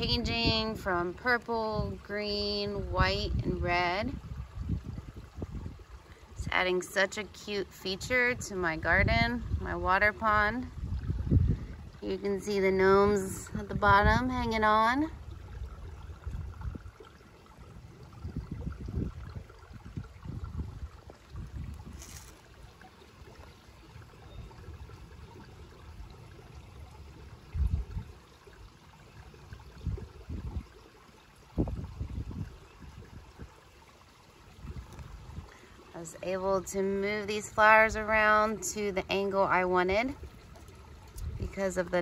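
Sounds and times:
water trickling: 0.0s - 42.0s
low rumbles on microphone: 1.6s - 6.6s, 8.3s - 17.1s, 17.7s - 22.4s, 27.4s - 28.2s, 29.6s - 30.7s, 31.5s - 33.6s.

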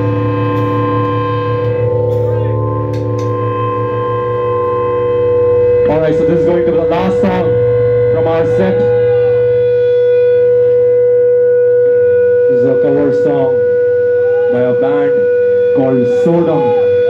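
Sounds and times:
bending wavering guitar notes: 0.0s - 17.0s
high-pitched feedback tone: 0.0s - 17.0s
low drone: 0.0s - 17.0s.

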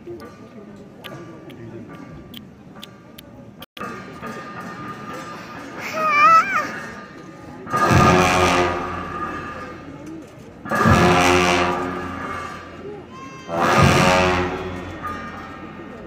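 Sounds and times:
large cymbals crashing: 7.6s - 10.0s, 10.7s - 12.9s.

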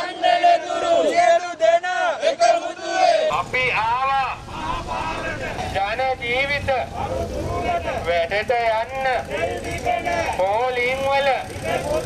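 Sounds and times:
crowd chanting: 0.0s - 5.8s.

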